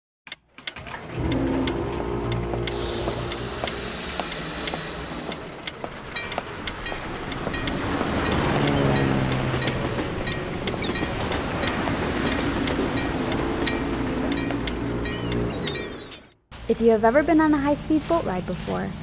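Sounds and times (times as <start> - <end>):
sharp ticking clicks: 0.3 - 16.2
held tones: 0.7 - 16.4
high sound gliding downward: 1.1 - 11.9
low droning rumble: 1.1 - 15.6.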